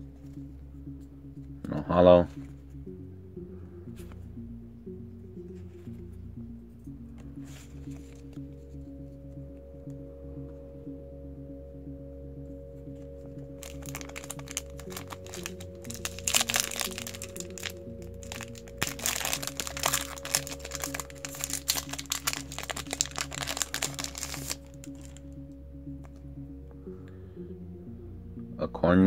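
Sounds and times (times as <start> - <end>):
background music: 0.0 - 29.0
foil wrapper crinkling and tearing: 13.6 - 25.2.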